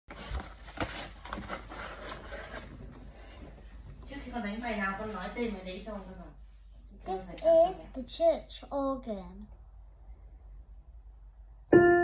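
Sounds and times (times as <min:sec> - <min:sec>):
soft rubbing: 0:01.5 - 0:06.9.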